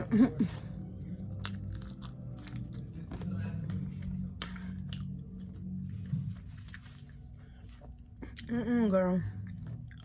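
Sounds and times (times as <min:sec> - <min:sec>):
person chewing food: 0:01.0 - 0:08.6, 0:09.4 - 0:10.0.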